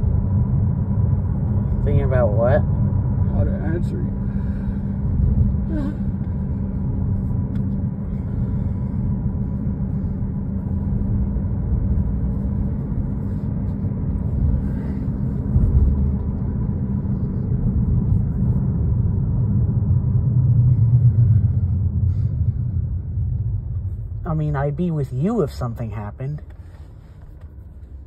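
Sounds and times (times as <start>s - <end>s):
car cabin rumble while driving: 0.0s - 28.0s.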